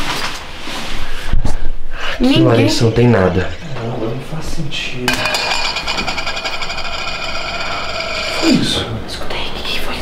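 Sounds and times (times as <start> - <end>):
high ringing tone: 5.2 - 8.8.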